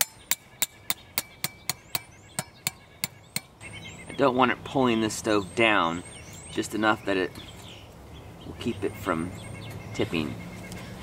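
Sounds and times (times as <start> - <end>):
hammering metal tent stake: 0.0 - 3.6.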